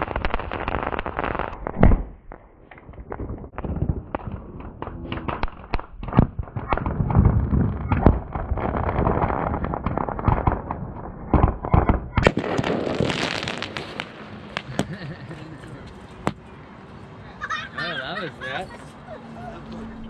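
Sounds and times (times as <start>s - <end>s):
firecrackers banging and popping: 0.0s - 16.5s.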